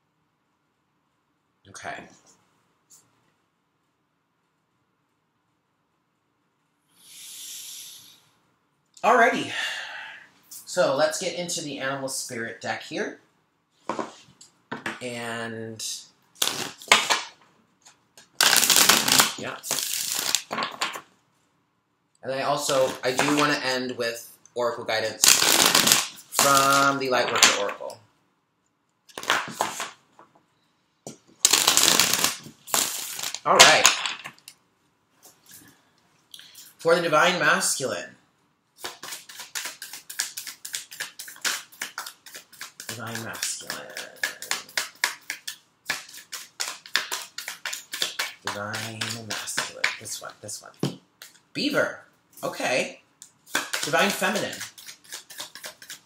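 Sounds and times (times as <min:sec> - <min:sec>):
objects knocking on tabletop: 0:13.9 - 0:15.0
cards being shuffled by hand: 0:17.9 - 0:21.1, 0:22.7 - 0:23.6, 0:25.2 - 0:27.8, 0:29.1 - 0:30.0, 0:31.4 - 0:34.3, 0:38.8 - 0:50.3, 0:53.5 - 0:56.0.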